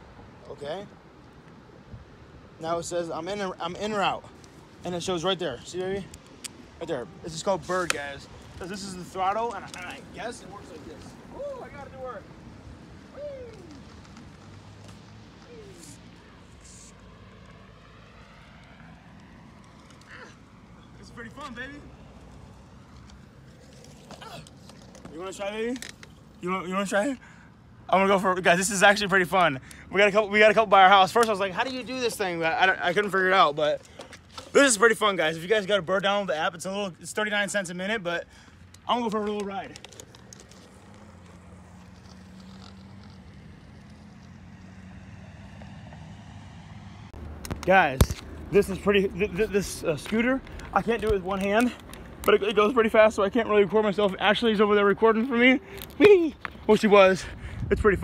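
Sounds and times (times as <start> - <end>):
faint outdoor background hum: 0.0 - 58.0
wind on microphone: 57.3 - 58.0.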